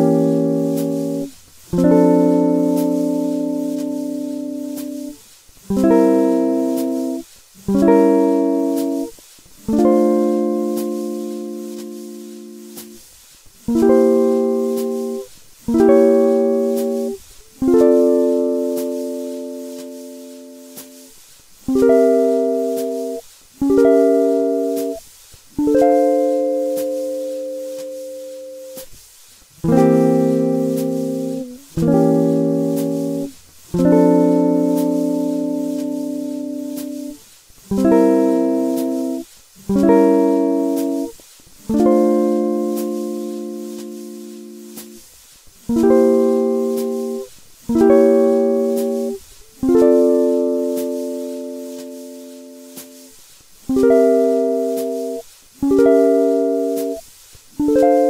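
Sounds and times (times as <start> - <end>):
solo guitar chords ringing: 0.0 - 9.1, 9.7 - 13.0, 13.7 - 21.1, 21.7 - 25.0, 25.6 - 28.8, 29.6 - 41.1, 41.7 - 45.0, 45.7 - 53.1, 53.7 - 57.0, 57.6 - 58.0.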